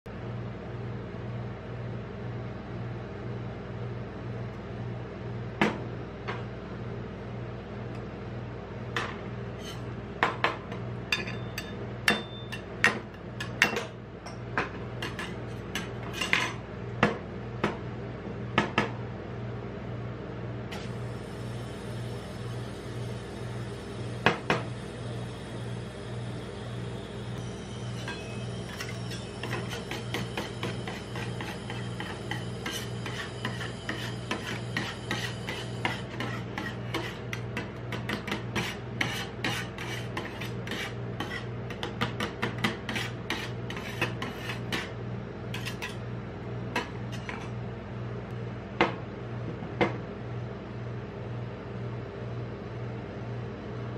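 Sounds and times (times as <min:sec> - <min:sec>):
steel spatulas scraping and chopping: 0:09.6 - 0:09.9, 0:11.2 - 0:13.9, 0:15.0 - 0:16.6, 0:27.8 - 0:46.0, 0:46.8 - 0:47.5.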